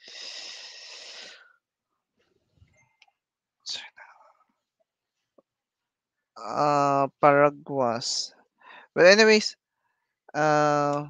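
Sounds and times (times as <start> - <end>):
man whispering into microphone: 3.7 - 4.4.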